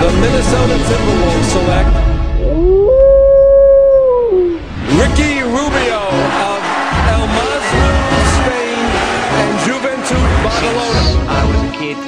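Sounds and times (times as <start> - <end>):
low music bass: 0.0 - 6.4
wolf howl: 2.4 - 4.6.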